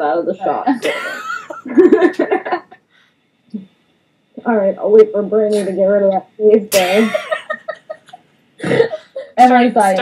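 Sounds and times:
women laughing: 0:00.7 - 0:02.8, 0:07.0 - 0:09.4
person coughing: 0:06.7 - 0:07.4, 0:08.6 - 0:09.1.

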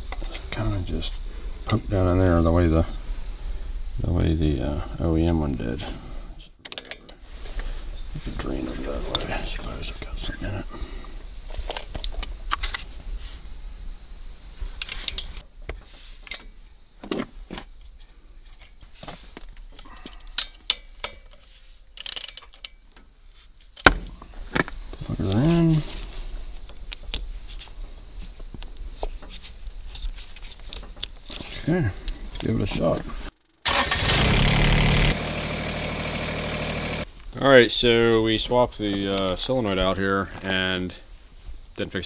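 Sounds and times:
short wordless voice: 0:08.2 - 0:10.9
ratcheting wrench clicking: 0:22.0 - 0:22.7.

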